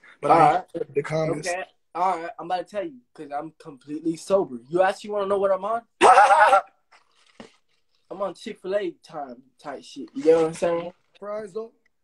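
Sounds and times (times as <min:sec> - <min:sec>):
man laughing: 0:06.0 - 0:06.7.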